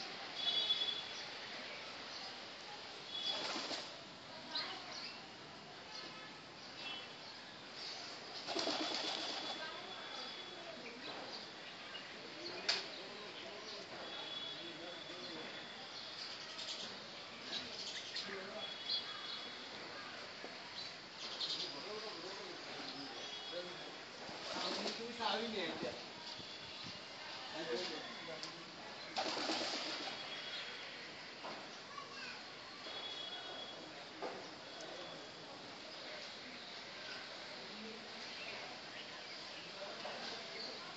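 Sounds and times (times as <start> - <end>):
pigeon wings flapping: 3.3 - 3.9, 8.4 - 9.6, 29.2 - 30.2.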